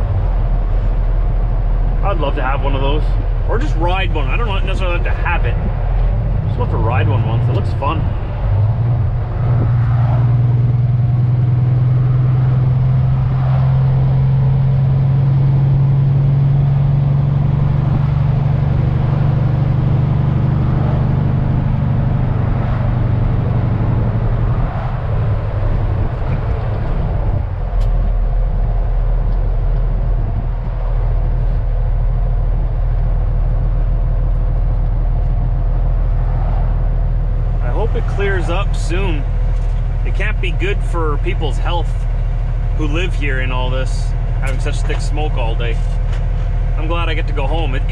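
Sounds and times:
truck diesel engine droning: 0.0 - 47.9.

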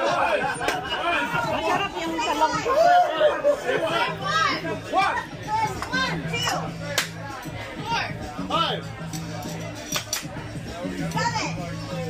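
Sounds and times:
diners conversing: 0.0 - 12.0.

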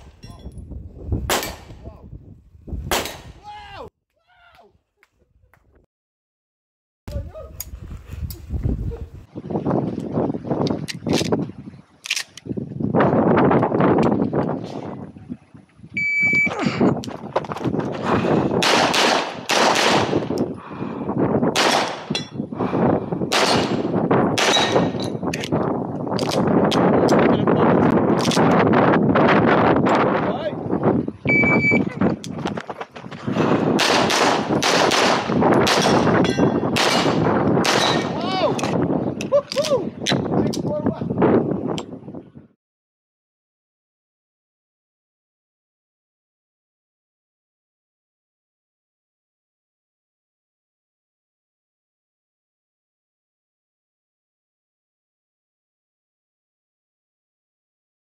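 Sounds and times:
shot timer beep: 16.0 - 16.5, 31.3 - 31.9
rapid handgun shots: 18.6 - 20.3, 21.6 - 22.1, 23.3 - 25.0, 33.8 - 36.1, 36.8 - 38.2.

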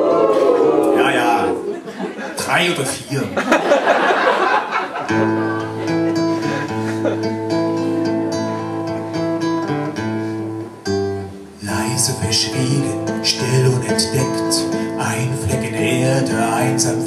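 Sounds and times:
acoustic guitar chords: 3.9 - 17.0.

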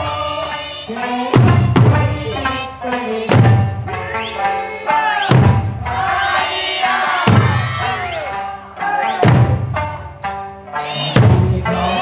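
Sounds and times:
folk song singing: 0.0 - 12.0
drums struck together: 1.3 - 2.6, 3.2 - 8.5, 9.2 - 10.5, 11.1 - 12.0
dancers shouting calls: 4.0 - 9.3.

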